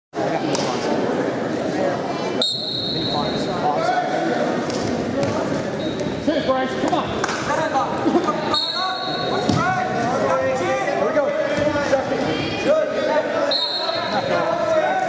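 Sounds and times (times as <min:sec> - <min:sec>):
referee's whistle blowing: 0:02.4 - 0:03.4, 0:08.5 - 0:09.4, 0:13.4 - 0:14.2
coaches and spectators shouting: 0:08.4 - 0:15.0.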